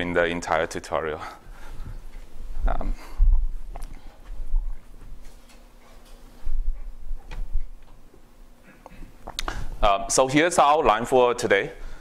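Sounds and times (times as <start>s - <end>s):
faint steady hum: 0.0s - 12.0s
dull low thumps: 1.7s - 5.2s.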